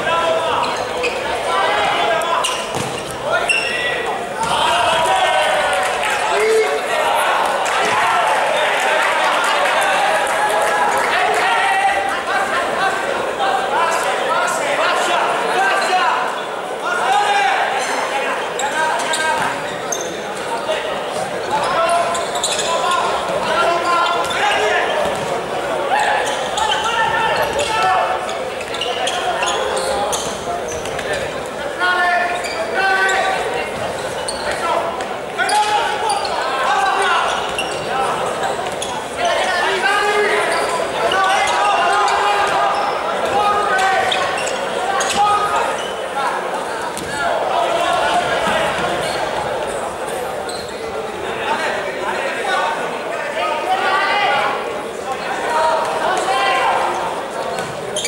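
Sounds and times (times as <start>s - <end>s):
players shouting: 0.0s - 58.0s.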